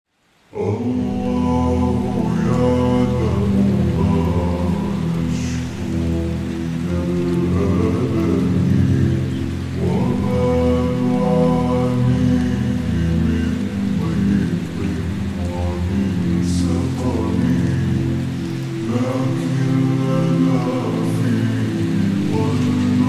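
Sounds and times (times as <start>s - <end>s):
falling rain: 0.1s - 23.0s
man singing a cappella: 0.5s - 23.0s.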